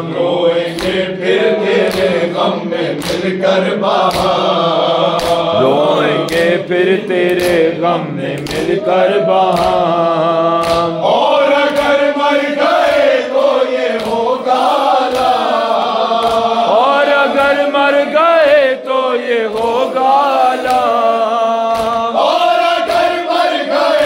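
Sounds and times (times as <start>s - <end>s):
men chanting a lament in unison: 0.0s - 24.0s
dull beat keeping time: 5.3s - 12.0s.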